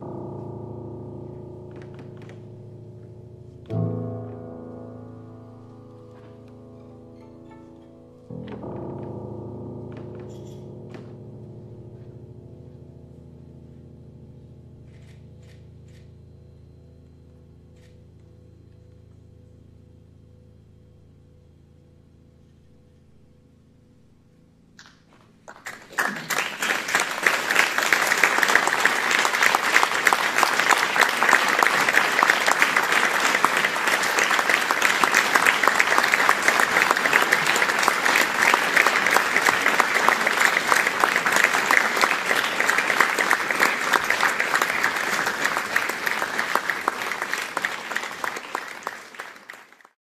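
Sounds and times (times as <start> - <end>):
audience applauding: 25.5 - 50.0.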